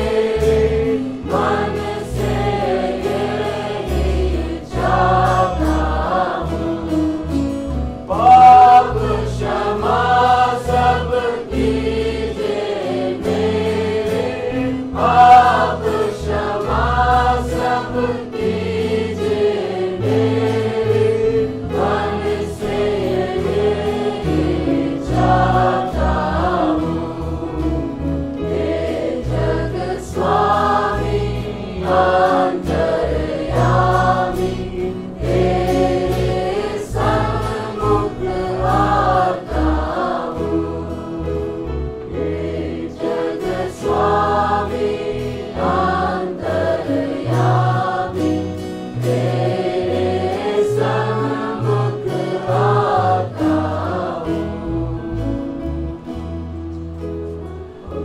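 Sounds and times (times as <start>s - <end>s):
choir singing worship song: 0.0s - 56.5s, 57.4s - 58.0s.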